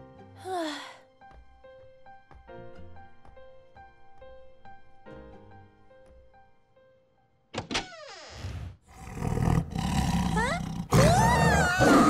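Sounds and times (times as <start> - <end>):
soft piano music: 0.0 - 7.5
cartoon leopard roaring: 8.5 - 12.0.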